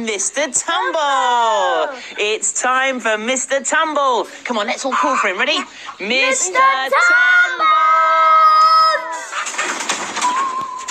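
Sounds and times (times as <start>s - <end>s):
children calling out together: 6.2s - 9.3s.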